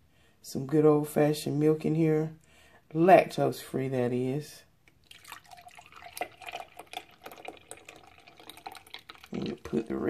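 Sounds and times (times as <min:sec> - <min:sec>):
milk pouring into blender cup: 0:05.0 - 0:10.0.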